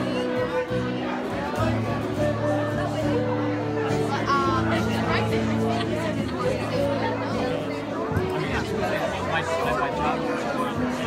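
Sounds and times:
guests chatting: 0.0s - 11.0s
live music with bass line: 0.0s - 11.0s.

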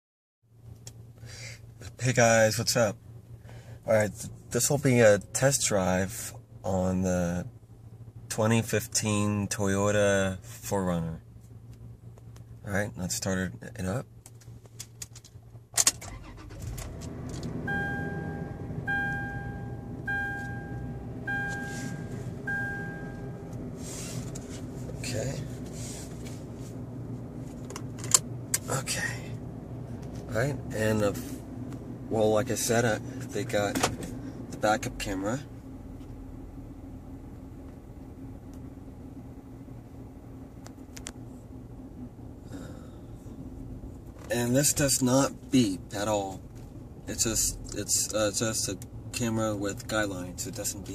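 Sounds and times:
car engine cranking and idling: 0.6s - 50.9s
two-tone dashboard warning chime: 17.6s - 23.5s.

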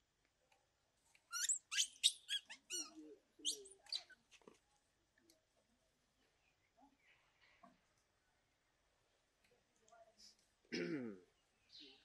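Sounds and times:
bird chirping: 1.3s - 4.2s.

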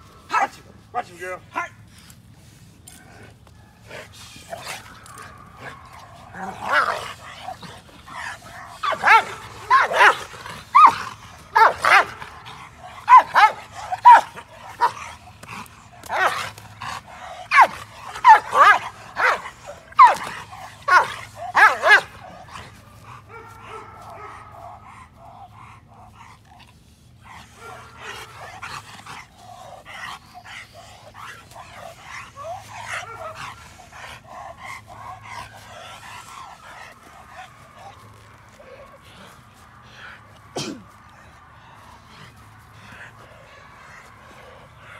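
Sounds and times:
dog barking: 4.5s - 15.2s, 16.0s - 16.6s, 17.4s - 25.5s, 27.5s - 28.8s, 31.5s - 33.8s.

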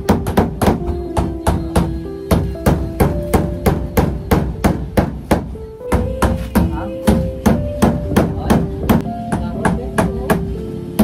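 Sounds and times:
hammer striking nails into plywood: 0.0s - 10.4s.

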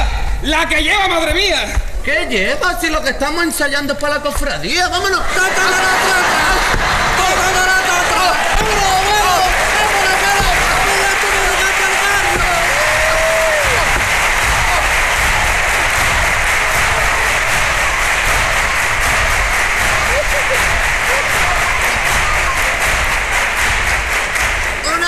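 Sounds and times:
audience applauding: 5.3s - 25.0s.

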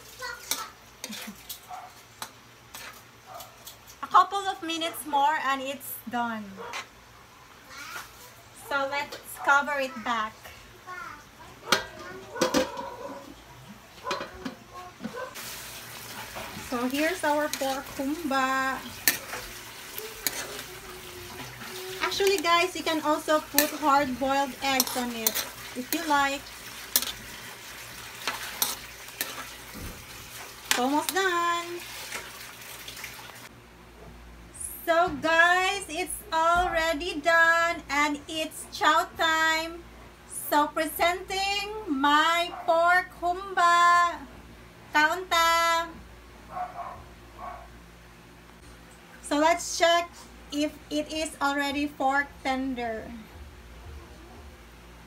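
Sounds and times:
sauce sizzling: 15.3s - 33.5s
metal ladle scraping metal pan: 16.0s - 20.7s, 21.3s - 29.8s.

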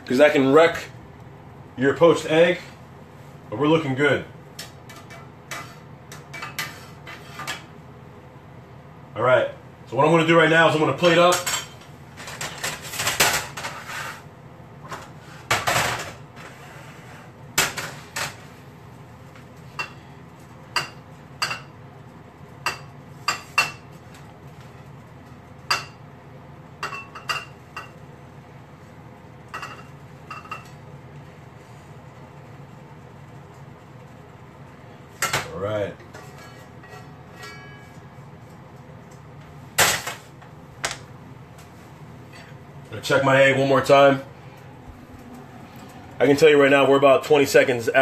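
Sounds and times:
utensil scraping metal skillet: 4.9s - 7.7s, 12.7s - 14.3s.

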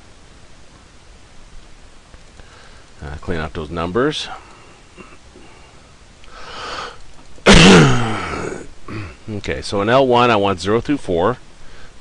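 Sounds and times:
person inhaling: 2.4s - 2.9s, 5.4s - 7.0s
person sneezing: 7.5s - 9.2s.

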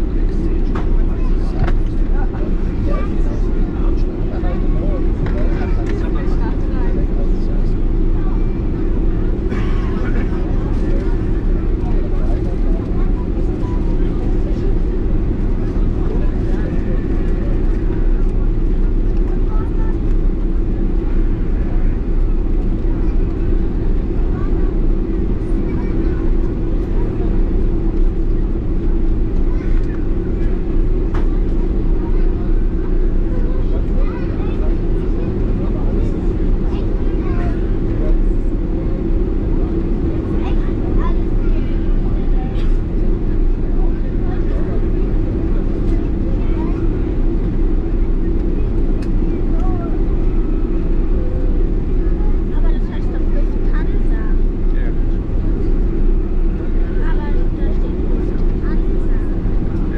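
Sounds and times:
faint passenger voices: 0.0s - 59.9s
jet engines and cabin air rumble: 0.0s - 59.9s.

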